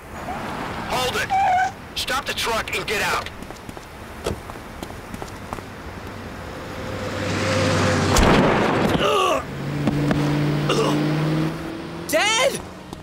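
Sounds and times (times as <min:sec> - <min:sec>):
truck engine approaching: 0:03.3 - 0:13.0.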